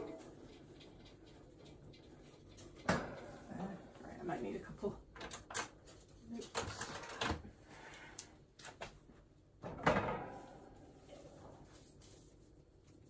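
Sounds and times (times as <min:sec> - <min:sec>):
light clicks and knocks in a wire cage: 0:00.0 - 0:04.0.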